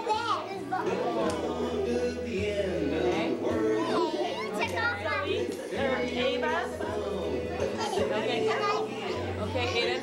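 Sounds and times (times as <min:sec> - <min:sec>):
young children chattering: 0:00.0 - 0:02.1, 0:02.9 - 0:10.0.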